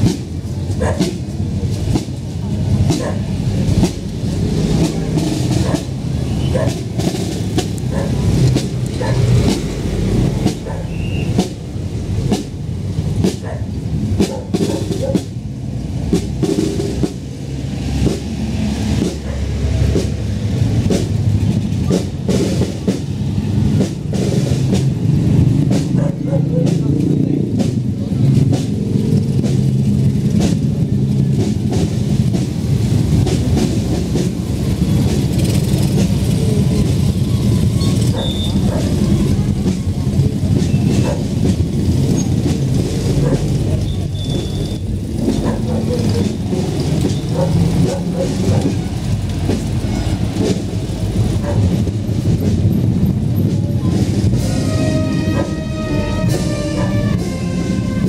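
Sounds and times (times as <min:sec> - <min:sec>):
crowd voices: 0:00.0 - 0:58.0
marching band playing: 0:00.0 - 0:58.0
motorcycle engine running: 0:20.6 - 0:49.8.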